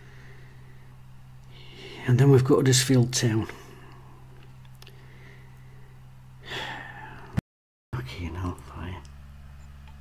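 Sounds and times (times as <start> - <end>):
man breathing in: 0.0 - 2.0, 4.9 - 7.4
low electrical hum: 0.0 - 7.4, 8.0 - 10.0.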